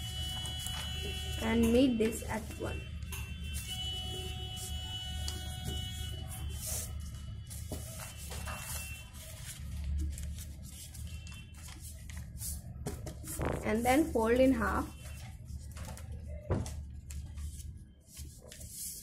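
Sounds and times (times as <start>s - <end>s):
paper being folded and creased: 0.0s - 1.5s, 4.5s - 13.8s, 15.0s - 16.4s, 17.0s - 19.0s
paper rustles: 0.0s - 2.5s, 3.5s - 19.0s.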